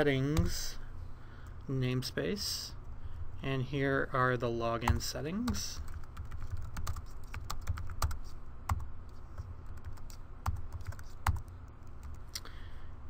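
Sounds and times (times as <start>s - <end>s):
computer keyboard typing: 4.9s - 8.9s, 9.6s - 12.2s.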